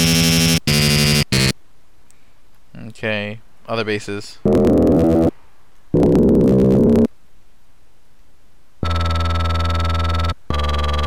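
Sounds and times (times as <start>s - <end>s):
synthesizer growl bass: 4.5s - 5.3s, 6.0s - 7.1s.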